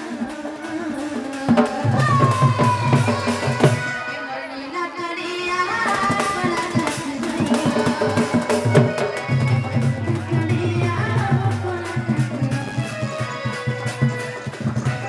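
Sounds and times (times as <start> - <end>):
woman singing into a microphone: 0.0 - 15.0
hand drum beating steady rhythm: 6.0 - 15.0.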